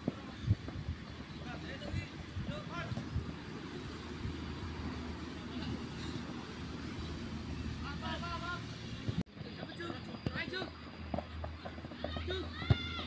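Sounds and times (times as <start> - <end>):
distant players shouting: 9.4 - 13.0.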